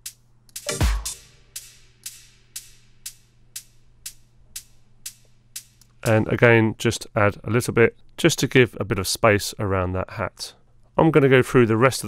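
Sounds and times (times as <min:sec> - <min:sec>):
closed hi-hat pattern: 0:00.0 - 0:06.4.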